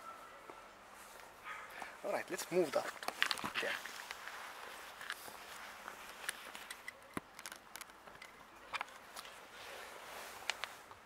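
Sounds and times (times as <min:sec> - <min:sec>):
faint clicks and scuffs: 0:01.0 - 0:11.0.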